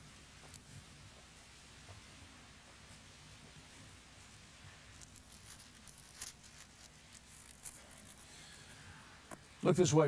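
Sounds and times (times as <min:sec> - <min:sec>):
thin pages being turned: 0:05.0 - 0:08.2.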